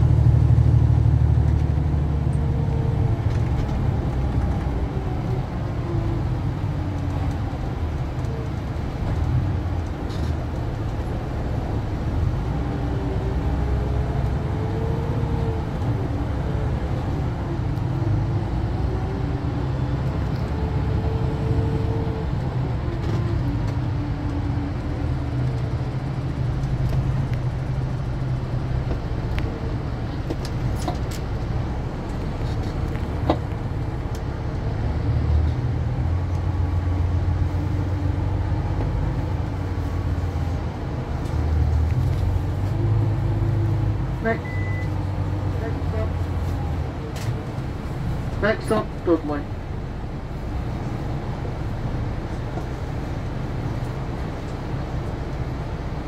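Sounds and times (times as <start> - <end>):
coach engine and road drone: 0.0 - 56.0
short high beep: 44.4 - 45.0.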